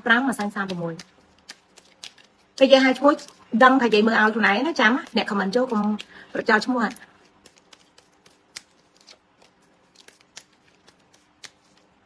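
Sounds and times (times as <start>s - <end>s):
woman speaking: 0.0s - 1.1s, 2.6s - 7.1s.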